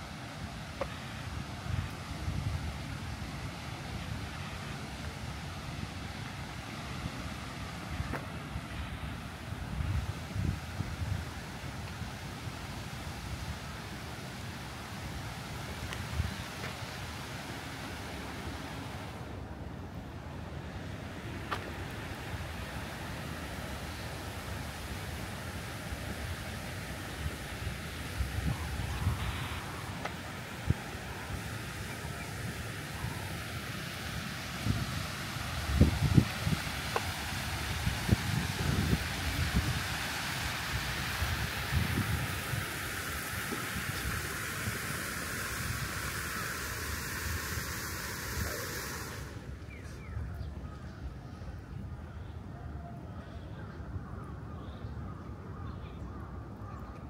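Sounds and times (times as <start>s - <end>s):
fountain jets splashing: 0.0s - 50.6s.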